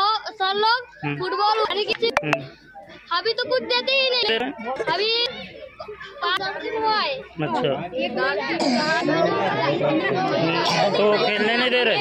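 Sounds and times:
children talking over one another: 0.0 - 12.0.

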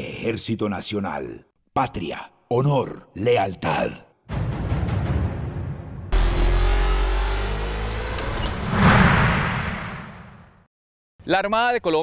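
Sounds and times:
rising tone: 6.1 - 10.6
whoosh: 8.2 - 10.7.

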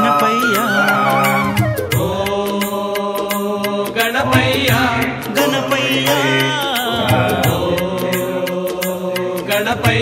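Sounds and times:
devotional song: 0.0 - 10.0
steady percussion beat: 0.0 - 10.0.

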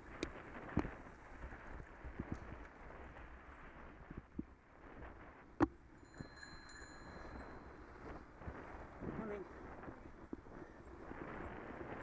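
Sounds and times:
low wind: 0.0 - 12.0
bicycle bell ringing: 6.0 - 7.9.

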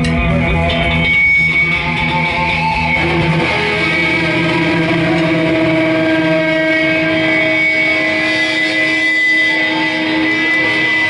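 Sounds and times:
distorted guitar drone and feedback: 0.0 - 11.0.

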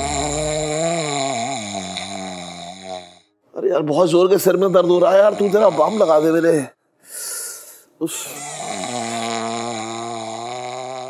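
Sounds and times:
woman snoring: 0.0 - 3.2, 8.3 - 11.0.

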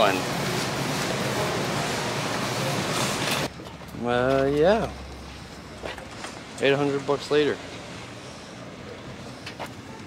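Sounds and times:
crowded store background din: 0.0 - 10.0.

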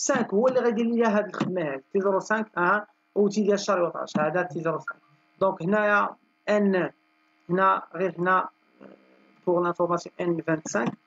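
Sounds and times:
electrical mains hum: 0.0 - 11.0
person speaking: 0.0 - 11.0.

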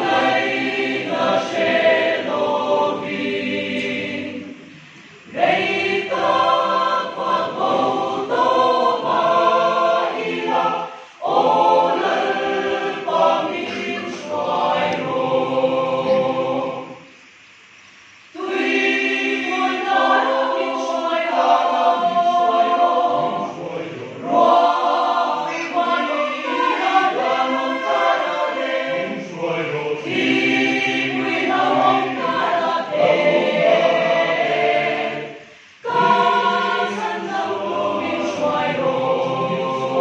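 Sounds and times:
mixed choir singing: 0.0 - 17.4, 18.3 - 40.0.

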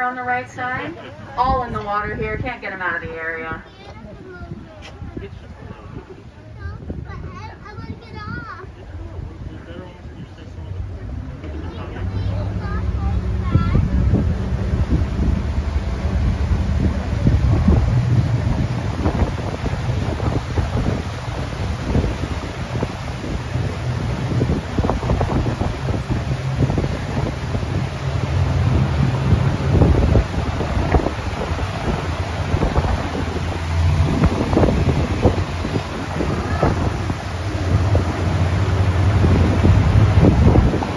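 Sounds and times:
boat motor hum: 0.0 - 40.9
wind buffeting microphone: 0.0 - 40.9.

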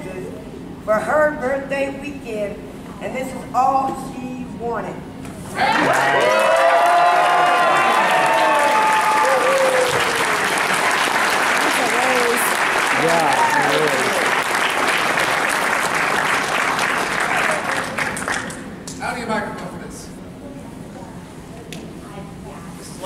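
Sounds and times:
shouts and whoops: 5.6 - 10.4, 13.0 - 14.1
audience clapping and cheering: 5.6 - 18.7.

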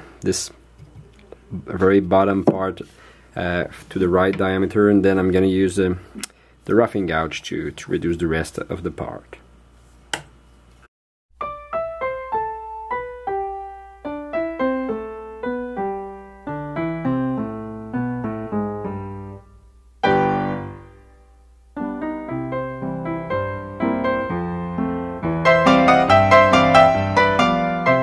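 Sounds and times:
piano music: 11.4 - 28.0.

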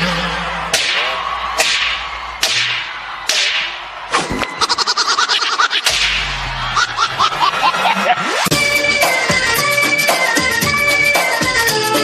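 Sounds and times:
whip-crack hits: 0.7 - 4.5, 5.8 - 6.4.

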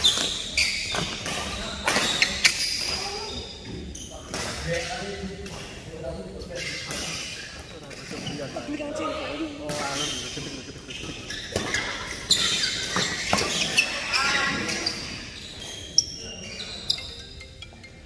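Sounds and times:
rackets hitting shuttlecock: 0.0 - 3.1.

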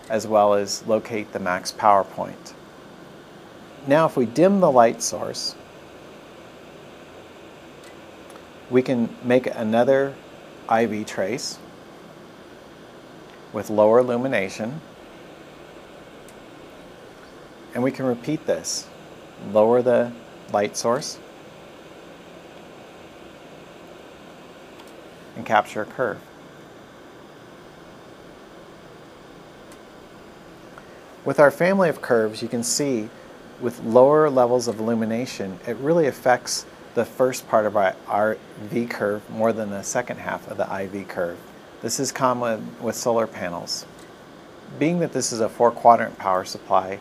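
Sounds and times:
room tone hiss: 0.0 - 47.0.

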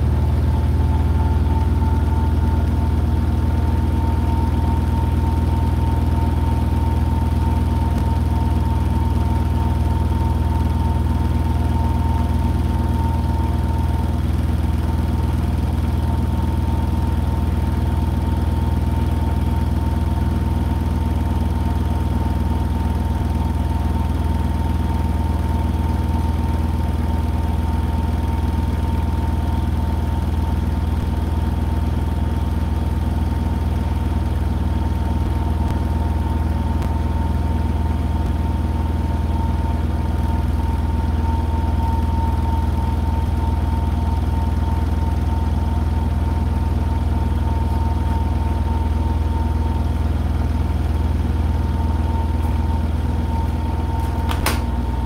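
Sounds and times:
washing machine spinning: 39.5 - 55.0.

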